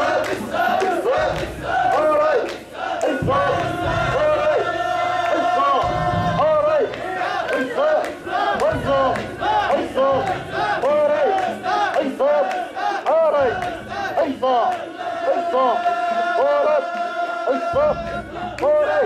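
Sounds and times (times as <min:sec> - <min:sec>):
crowd chanting in unison: 0:00.0 - 0:19.0.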